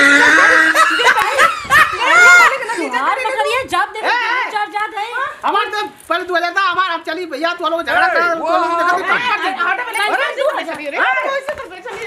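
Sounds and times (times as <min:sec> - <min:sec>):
woman crying out and laughing: 0:00.0 - 0:03.0.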